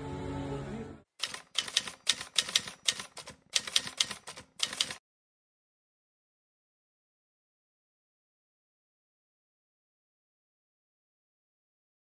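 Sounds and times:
typewriter keystrokes clacking: 0:01.2 - 0:05.0.

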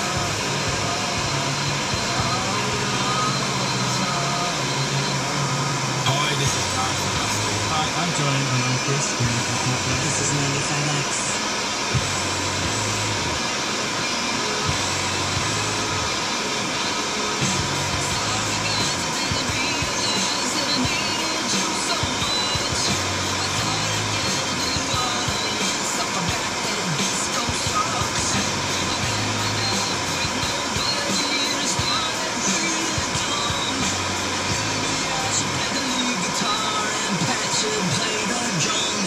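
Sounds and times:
car radio music with bass line: 0:00.0 - 0:39.0
constant rushing noise: 0:00.0 - 0:39.0.

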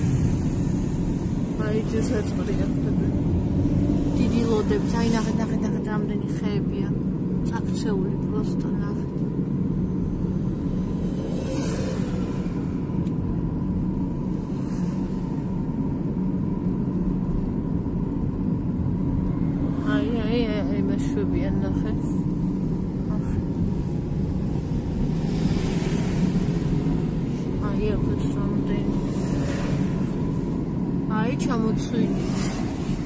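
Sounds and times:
road and engine rumble: 0:00.0 - 0:33.0.

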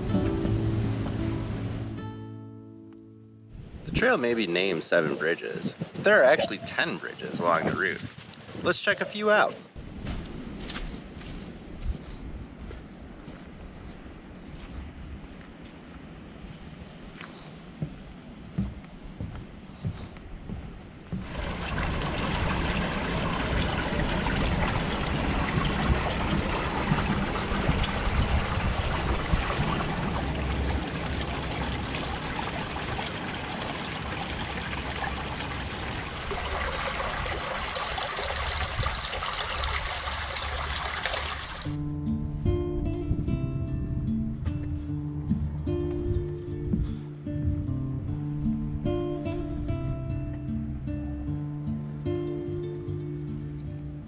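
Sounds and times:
acoustic guitar strumming: 0:00.0 - 0:03.6, 0:41.7 - 0:54.0
creek water trickling: 0:21.1 - 0:41.8.

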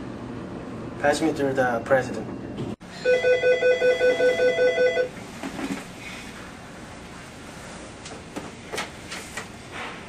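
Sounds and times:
desk telephone ringing: 0:03.0 - 0:05.2.

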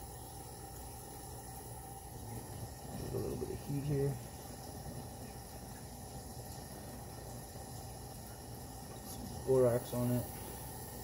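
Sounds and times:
faint background hiss and hum: 0:00.0 - 0:11.0.

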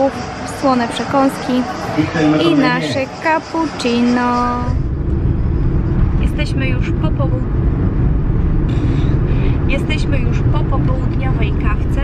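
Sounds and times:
car engine rumble: 0:00.0 - 0:12.0
road noise: 0:00.0 - 0:12.0.

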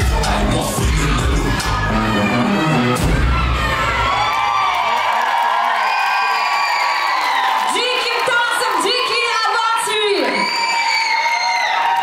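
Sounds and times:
dance music with heavy bass: 0:00.0 - 0:03.6
audience cheering and whooping: 0:00.0 - 0:12.0.

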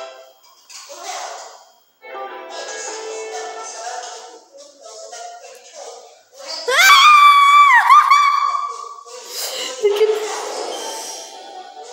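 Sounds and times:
high-pitched scream: 0:06.7 - 0:09.0.

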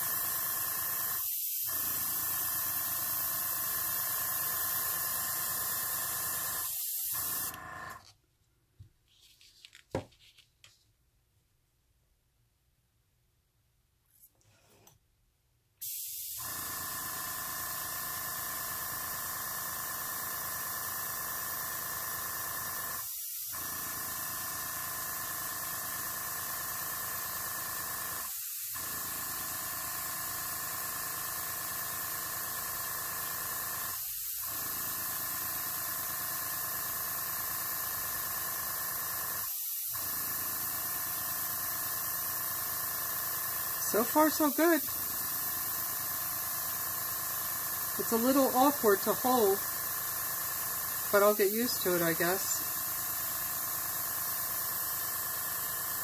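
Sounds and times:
airbrush air hiss: 0:00.0 - 0:07.6, 0:15.8 - 0:16.5.

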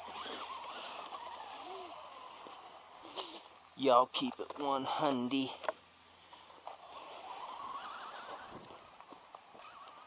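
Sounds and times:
electric motor whining: 0:00.0 - 0:03.6, 0:06.6 - 0:08.9, 0:09.5 - 0:10.0.

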